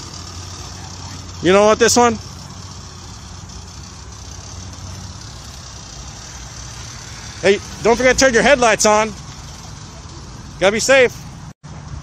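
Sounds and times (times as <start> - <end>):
van engine idling: 0.0 - 12.0.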